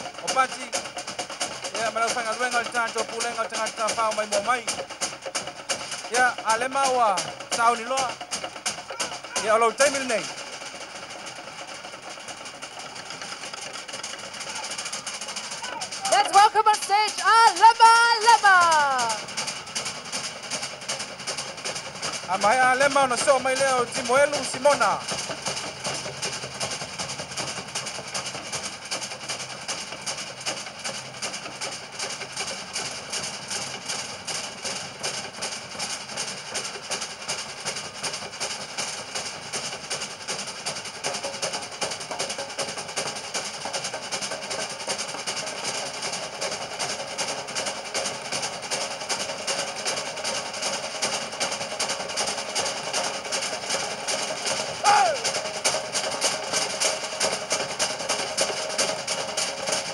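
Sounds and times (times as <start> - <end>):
drummers playing fast rhythm: 0.0 - 59.9.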